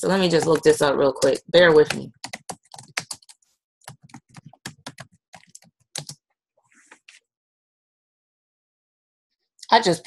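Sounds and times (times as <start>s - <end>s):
computer keyboard typing: 0.0s - 6.2s.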